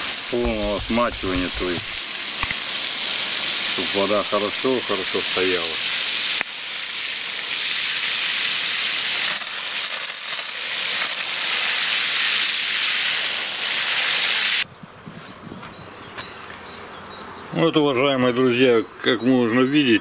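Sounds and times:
hose spray hissing: 0:00.0 - 0:14.6.

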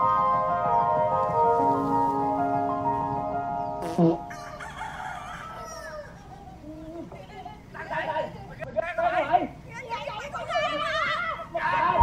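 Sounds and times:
rooster crowing: 0:04.2 - 0:06.6.

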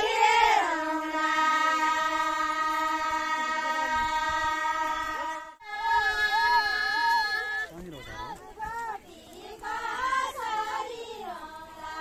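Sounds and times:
women singing in unison: 0:00.0 - 0:07.6, 0:08.2 - 0:12.0.

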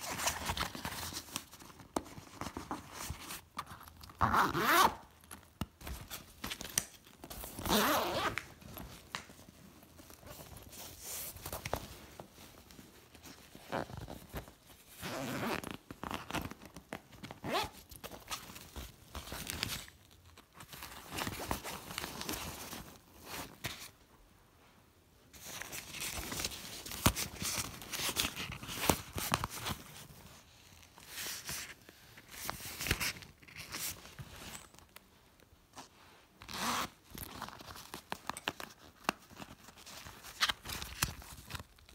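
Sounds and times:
zipper being pulled: 0:04.2 - 0:05.0, 0:07.6 - 0:08.4, 0:15.0 - 0:15.8, 0:17.4 - 0:17.8, 0:36.5 - 0:37.0.

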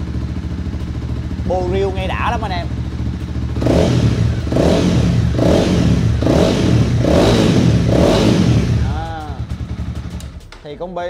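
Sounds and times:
motorcycle engine revving: 0:00.0 - 0:10.7
motorcycle engine idling: 0:00.0 - 0:11.0.

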